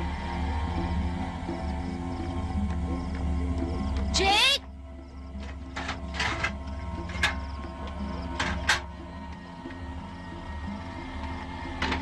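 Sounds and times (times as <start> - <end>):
low droning music: 0.0 - 12.0.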